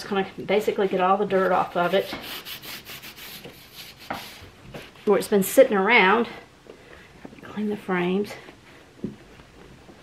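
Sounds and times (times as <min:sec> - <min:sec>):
cloth rag rubbing on wood: 0:01.3 - 0:05.4.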